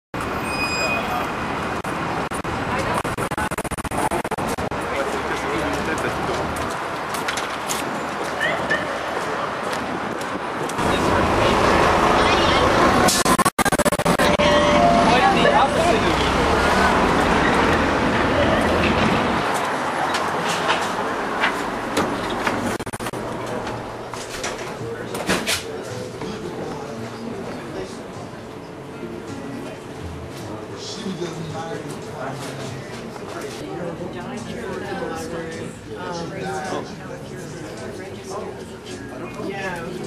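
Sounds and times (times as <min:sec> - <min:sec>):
street traffic: 0:00.2 - 0:34.8
high-pitched tone: 0:02.3 - 0:04.7, 0:13.1 - 0:15.3, 0:22.7 - 0:23.1.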